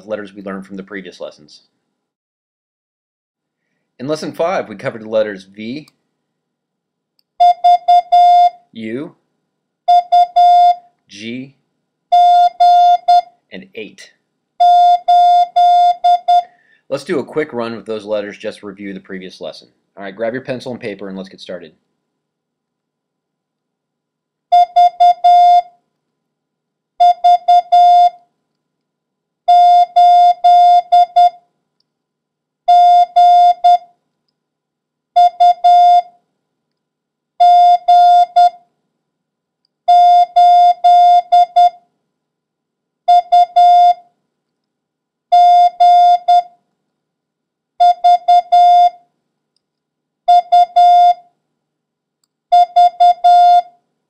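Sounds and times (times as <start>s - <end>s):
morse code beeps: 7.4s - 8.6s, 9.9s - 10.8s, 12.1s - 13.3s, 14.6s - 16.5s, 24.5s - 25.7s, 27.0s - 28.2s, 29.5s - 31.4s, 32.7s - 33.9s, 35.2s - 36.1s, 37.4s - 38.6s, 39.9s - 41.8s, 43.1s - 44.0s, 45.3s - 46.6s, 47.8s - 49.0s, 50.3s - 51.2s, 52.5s - 53.7s.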